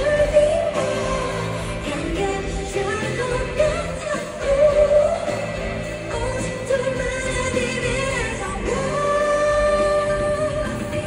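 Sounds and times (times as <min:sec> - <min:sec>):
band accompaniment: 0:00.0 - 0:11.0
woman singing pop song live: 0:00.0 - 0:11.0.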